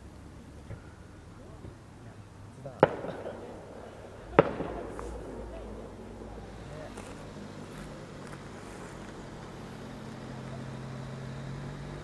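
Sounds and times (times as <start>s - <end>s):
distant fireworks bangs: 2.5s - 12.0s.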